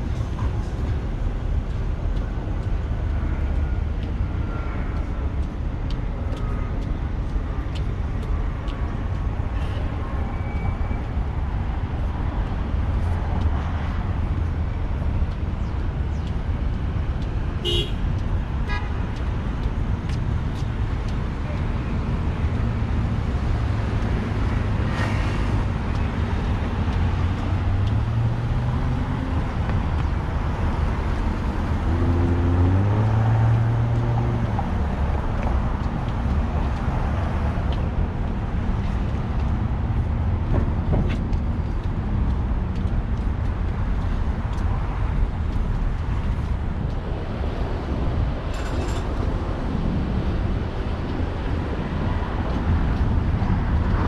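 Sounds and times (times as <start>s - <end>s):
road traffic rumble: 0.0s - 54.0s
car horn toot: 17.6s - 18.0s.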